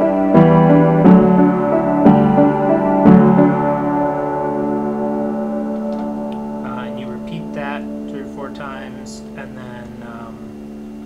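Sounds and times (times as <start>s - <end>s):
piano chord ringing: 0.0s - 11.0s
man speaking: 6.6s - 10.5s.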